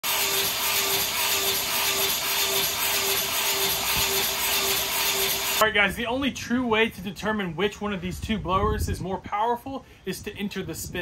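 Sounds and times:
leaf blowers running: 0:00.0 - 0:05.6.

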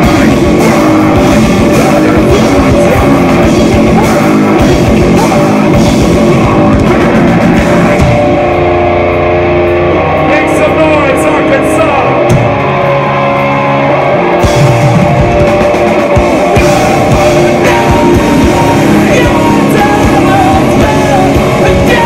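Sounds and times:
drum kit crashing: 0:00.0 - 0:08.8, 0:14.4 - 0:22.0
metalcore band playing live: 0:00.0 - 0:22.0.

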